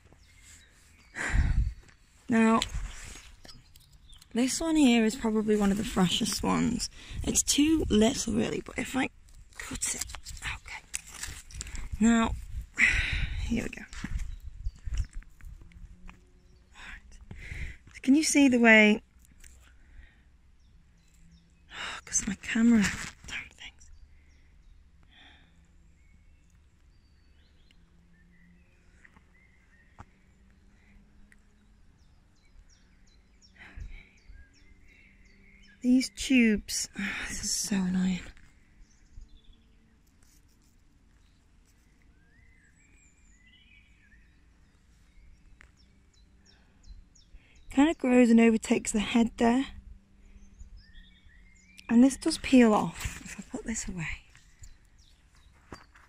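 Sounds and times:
small bird chirping: 0.0s - 19.7s, 25.9s - 56.0s
faint woodland ambience: 0.0s - 56.0s
handling ticks: 7.5s - 12.1s
birds chirping and singing: 31.6s - 39.8s, 41.2s - 56.0s.

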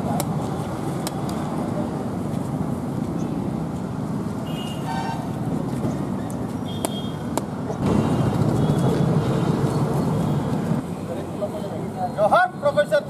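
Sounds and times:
road traffic: 0.0s - 13.0s.

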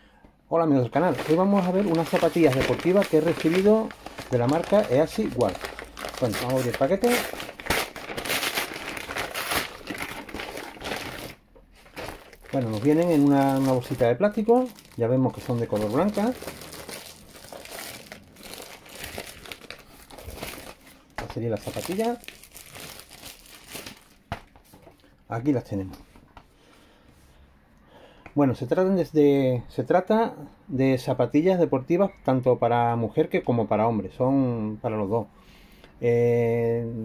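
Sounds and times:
plastic bag crinkling: 0.8s - 25.1s
paper envelope tearing and crumpling: 1.0s - 24.2s.

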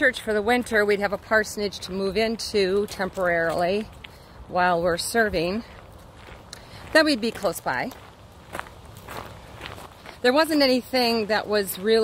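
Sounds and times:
footsteps on hiking trail: 0.0s - 12.0s.

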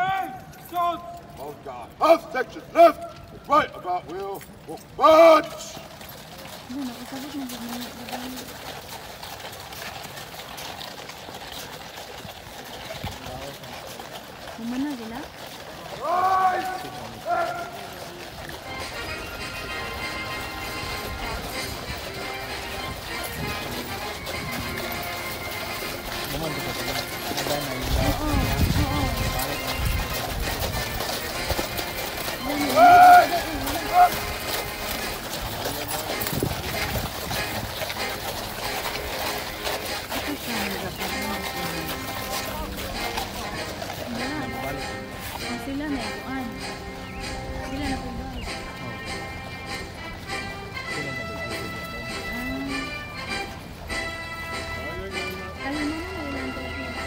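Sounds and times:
crowd chatter: 0.0s - 57.0s
horse hooves walking on sand: 0.0s - 57.0s
loud calls: 14.6s - 51.1s
music playing: 18.4s - 57.0s.

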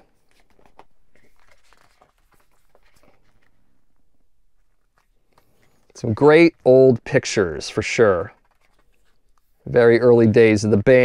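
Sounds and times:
book pages rustling: 0.0s - 10.6s.

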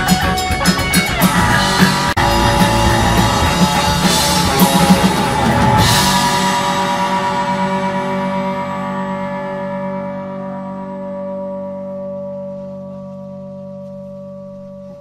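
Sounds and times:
electric guitar chord ringing: 0.0s - 15.0s
cymbal crash: 1.3s - 12.0s.

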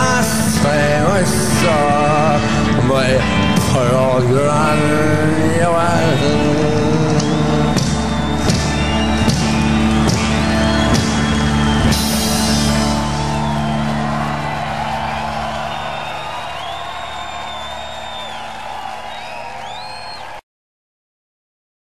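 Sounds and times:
live band closing chord: 0.1s - 16.7s
audience whooping and cheering: 5.5s - 20.4s
drum and cymbal hits: 7.2s - 14.0s.

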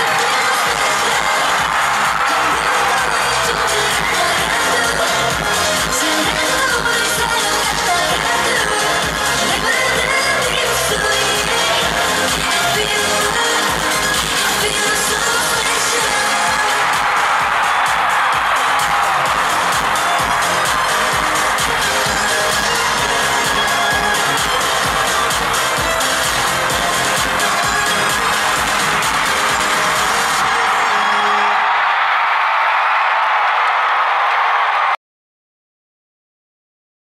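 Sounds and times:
live pop music over sound system: 0.0s - 33.7s
crowd noise: 0.0s - 35.0s.

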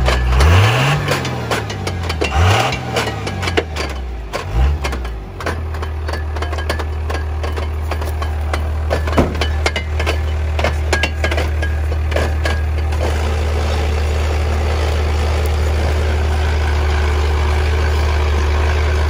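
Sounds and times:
pickup engine revving and idling: 0.0s - 19.0s.

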